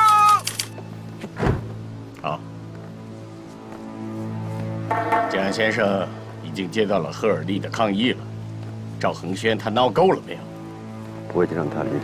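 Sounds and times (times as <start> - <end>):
car door shutting: 1.2 - 1.8
music score: 3.5 - 6.8.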